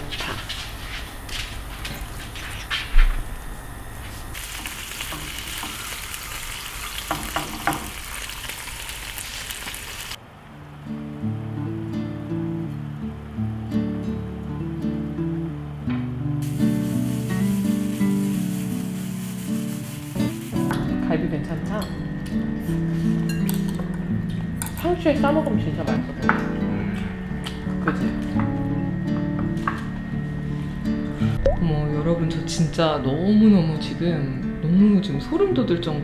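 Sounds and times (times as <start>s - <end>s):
stew hissing on burner: 4.3s - 10.2s, 16.4s - 20.7s
meat sizzling in frying pan: 4.4s - 10.2s, 16.4s - 20.7s.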